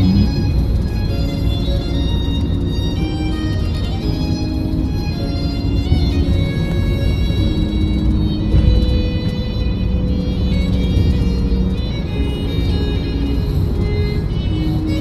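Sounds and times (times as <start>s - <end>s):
music on car radio: 0.0s - 15.0s
road noise inside car: 0.0s - 15.0s.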